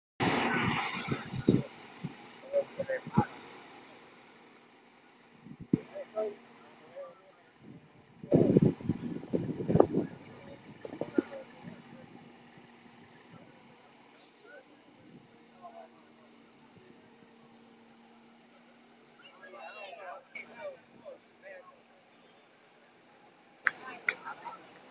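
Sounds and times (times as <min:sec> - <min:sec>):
fire truck engine: 0:00.2 - 0:24.9.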